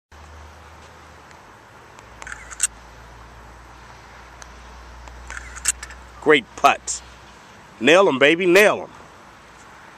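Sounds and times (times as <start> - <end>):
distant road traffic rumble: 0.1 - 9.9
sharp clicks: 1.2 - 2.7, 4.4 - 6.0.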